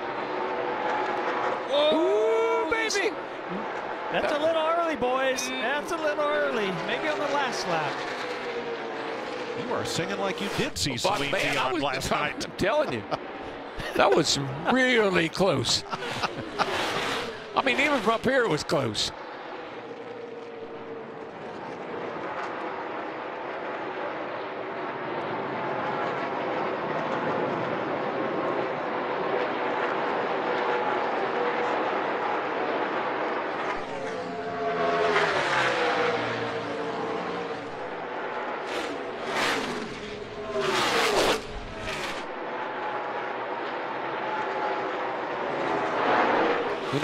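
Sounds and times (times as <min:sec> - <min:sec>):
race car engines droning: 0:00.0 - 0:47.0
race cars passing by: 0:00.0 - 0:47.0.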